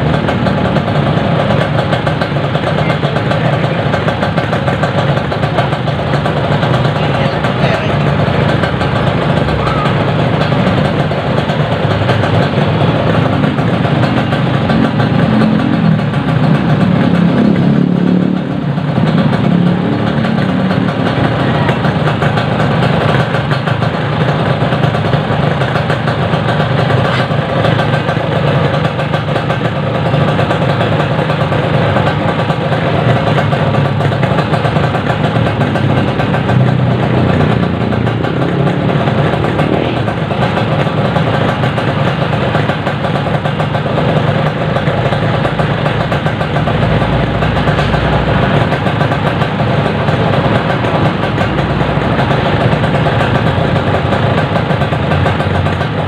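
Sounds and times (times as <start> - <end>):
two-stroke motorcycle engines idling: 0.0 - 56.0.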